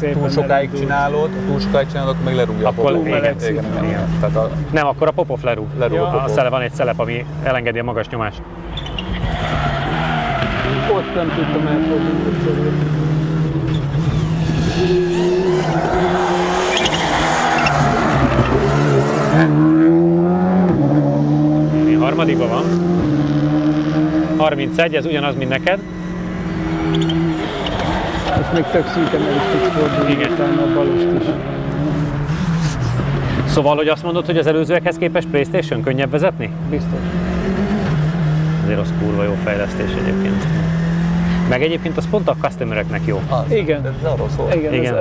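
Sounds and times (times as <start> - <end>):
rally car engine revving hard: 9.0 - 44.4.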